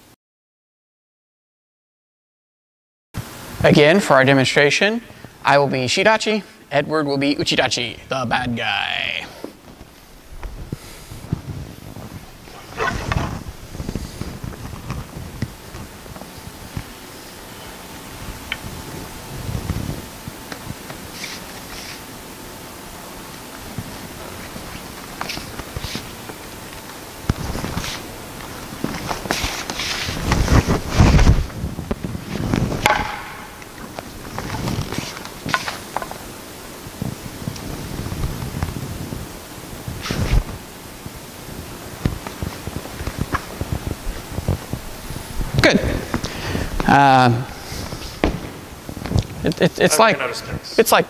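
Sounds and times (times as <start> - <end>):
wooden swords clacking: 32.8 - 33.6.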